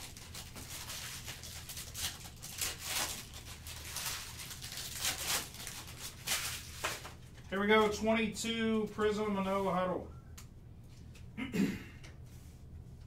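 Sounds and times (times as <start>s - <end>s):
foil wrapper tearing and crinkling: 0.0s - 7.2s
steady low hum: 3.2s - 13.0s.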